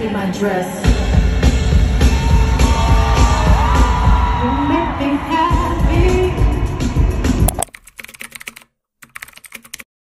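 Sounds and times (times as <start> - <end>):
heavy bass beat: 0.9 - 4.7
woman singing: 4.4 - 7.1.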